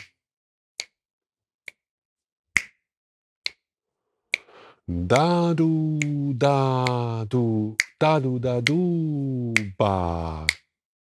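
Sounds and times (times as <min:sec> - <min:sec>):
finger snaps: 0:00.0 - 0:00.2, 0:02.6 - 0:02.8, 0:03.4 - 0:03.6, 0:04.3 - 0:10.7.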